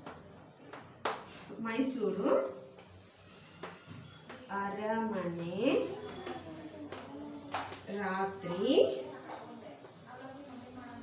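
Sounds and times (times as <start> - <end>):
chalk tapping on blackboard: 2.8 - 4.5.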